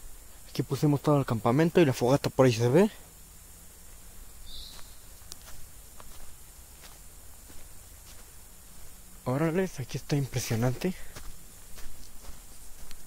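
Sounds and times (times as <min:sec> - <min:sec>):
low steady hiss: 0:00.0 - 0:13.0
high chirp: 0:04.4 - 0:05.2.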